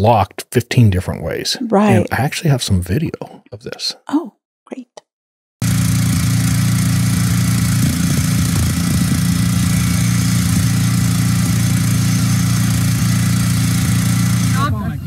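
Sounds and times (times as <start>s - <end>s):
power grinder cutting steel: 5.6s - 14.7s.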